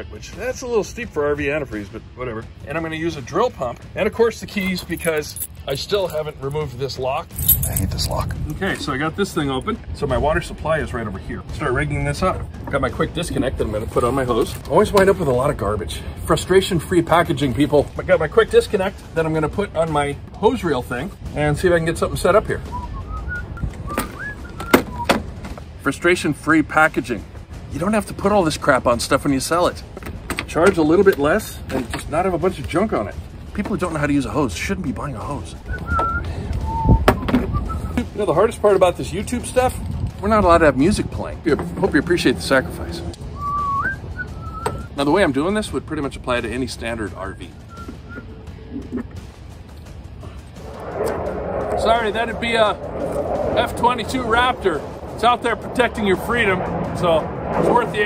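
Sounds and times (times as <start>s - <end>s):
soft whistling: 22.6s - 25.3s, 35.6s - 38.4s, 43.2s - 45.0s, 47.1s - 48.8s
jet flying over: 40.2s - 44.9s, 49.9s - 58.0s.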